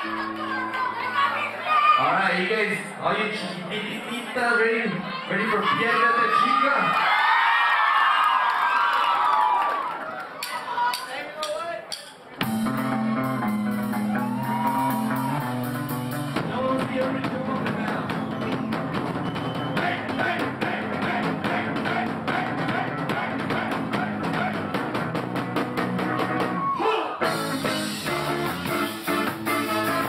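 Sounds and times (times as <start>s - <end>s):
ska band playing live: 11.9s - 30.0s.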